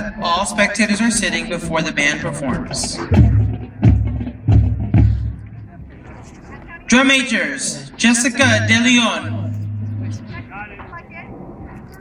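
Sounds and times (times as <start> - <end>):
public address announcement: 0.0 - 4.3, 5.0 - 12.0
faint chatter of voices: 2.9 - 8.0, 9.2 - 12.0.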